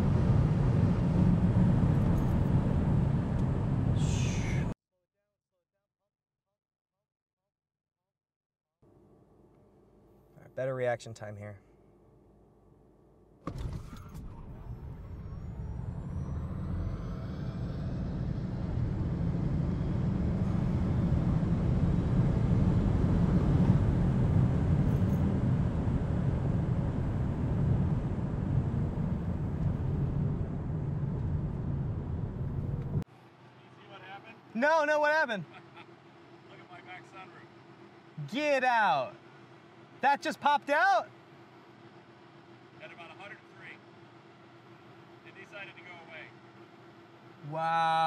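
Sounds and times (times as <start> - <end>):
road and wind noise rush: 0.0 - 4.7, 13.5 - 33.1.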